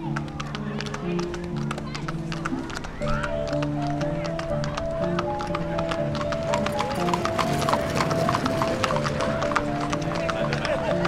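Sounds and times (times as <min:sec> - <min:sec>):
film score with held notes: 0:00.0 - 0:11.0
hooves clip-clopping on pavement: 0:00.0 - 0:11.0.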